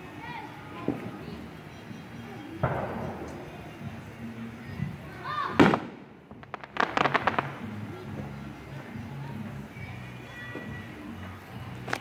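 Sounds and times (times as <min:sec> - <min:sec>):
crackling pops: 0:02.6 - 0:03.9, 0:05.6 - 0:07.7
firework boom: 0:02.6 - 0:03.9.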